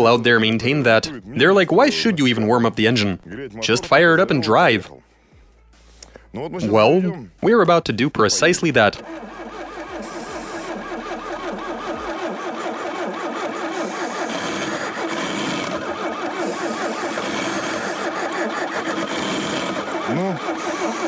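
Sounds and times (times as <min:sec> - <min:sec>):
starter cranking cold engine: 0:08.3 - 0:21.0.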